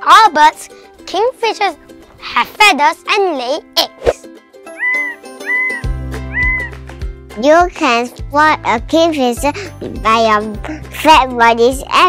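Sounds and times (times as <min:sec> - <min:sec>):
children's background music: 0:00.0 - 0:12.0
cartoon meow-like tones: 0:04.7 - 0:06.8.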